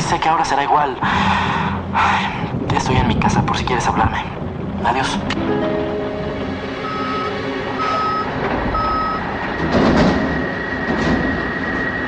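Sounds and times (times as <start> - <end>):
steady background rumble: 0.0 - 12.0
thin high tone: 5.4 - 9.3
loud noisy swell: 5.4 - 9.7
short electronic beeps: 6.8 - 9.2.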